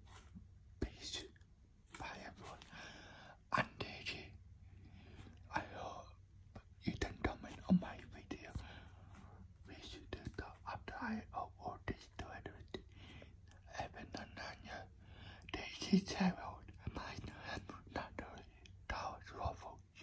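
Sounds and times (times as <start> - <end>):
person whispering: 0.8 - 2.9, 3.5 - 4.4, 5.4 - 8.8, 9.6 - 20.0.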